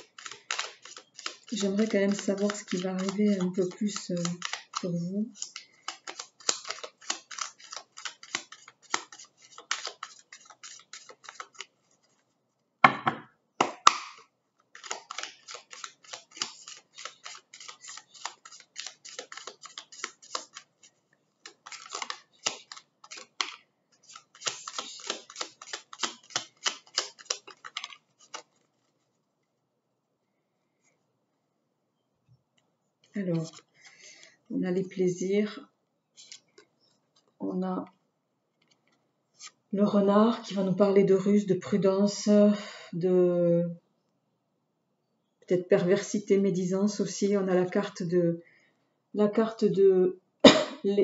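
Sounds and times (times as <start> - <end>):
cards shuffled by hand: 0.0 - 12.3, 13.6 - 29.2, 33.0 - 34.3, 36.2 - 37.4
knocks: 12.8 - 13.3.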